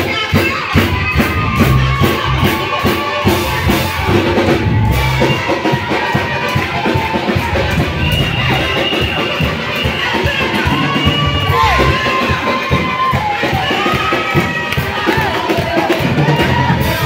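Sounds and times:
drum kit beat: 0.0 - 17.0
gospel band playing: 0.0 - 17.0
voices singing: 7.6 - 14.2.

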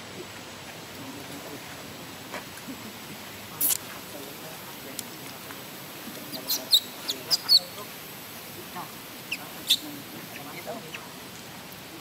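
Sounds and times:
infant monkey squealing: 6.3 - 7.8.

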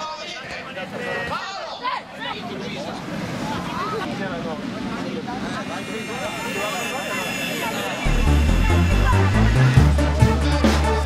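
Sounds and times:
crowd shouting and chattering: 0.0 - 11.0
electronic music with pulsing bass: 8.1 - 11.0.

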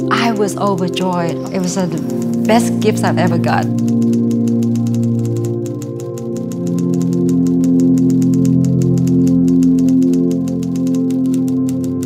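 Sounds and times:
soft music chords: 0.0 - 12.0
typewriter keys clacking: 0.3 - 12.0.

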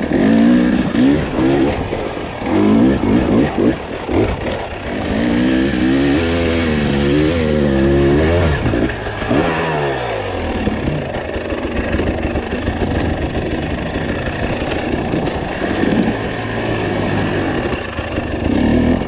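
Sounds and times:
dirt bike engine revving: 0.0 - 19.0
rush of trail noise: 0.0 - 19.0.

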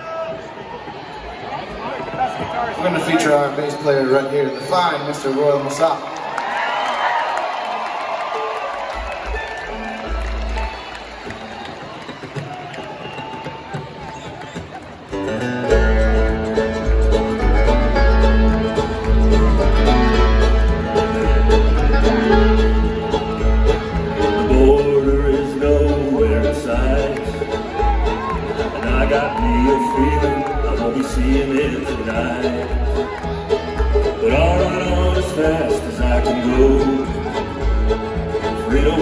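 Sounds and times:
bluegrass band playing: 8.4 - 11.6, 15.0 - 39.0
upright bass notes: 15.2 - 39.0.

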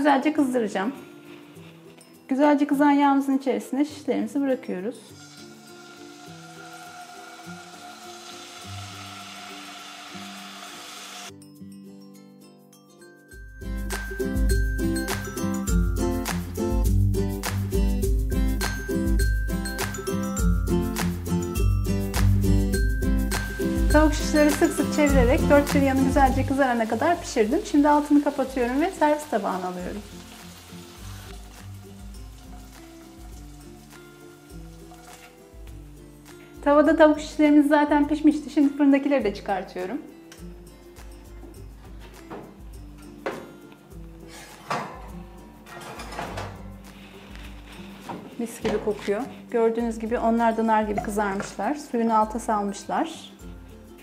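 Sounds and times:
soft background music: 0.0 - 54.0
chicken sizzling in a frying pan: 5.1 - 11.3, 23.9 - 35.6
background music with bass: 13.4 - 27.6.

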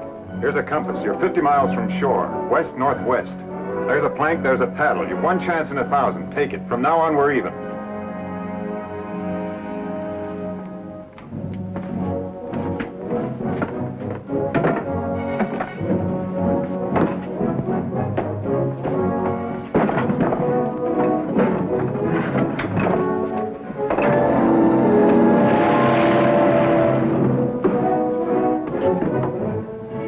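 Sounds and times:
orchestral staccato hits: 7.4 - 30.0.

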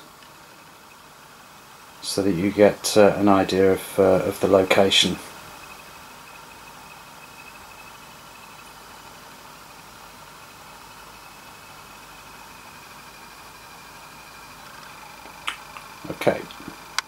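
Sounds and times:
faint room tone hiss: 0.0 - 17.0
thin high whine: 0.0 - 17.0.

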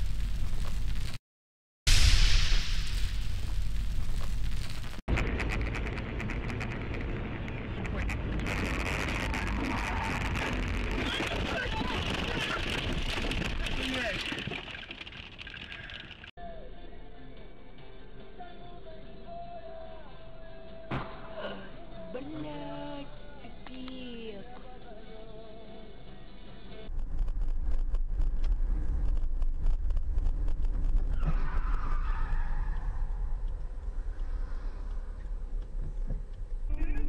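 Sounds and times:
loud crash and explosion: 1.9 - 5.6
road and wind noise in car: 5.1 - 13.3, 26.9 - 37.0.

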